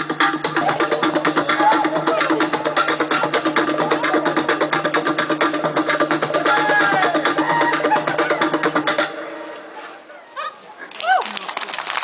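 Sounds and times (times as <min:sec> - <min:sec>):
drum-backed music: 0:00.0 - 0:09.2
faint crowd noise: 0:00.4 - 0:12.0.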